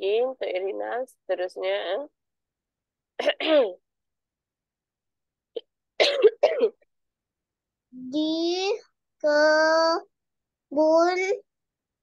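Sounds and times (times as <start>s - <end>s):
person coughing: 6.0s - 6.8s.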